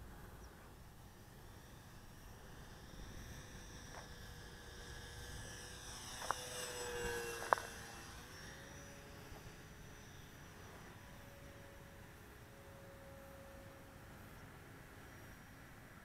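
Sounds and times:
model plane electric motor whining: 0.0 - 16.0.

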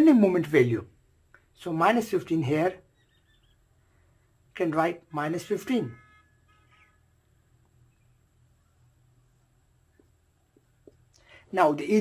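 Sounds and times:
marker squeaking on paper: 2.7 - 3.8, 6.5 - 7.2.

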